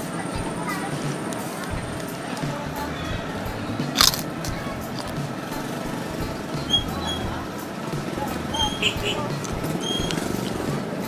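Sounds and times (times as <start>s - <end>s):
prawn cracker crunching: 3.8s - 5.3s.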